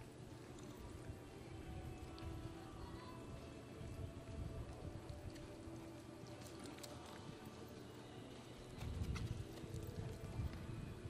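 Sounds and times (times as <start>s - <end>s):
horse galloping on dirt: 3.4s - 11.0s.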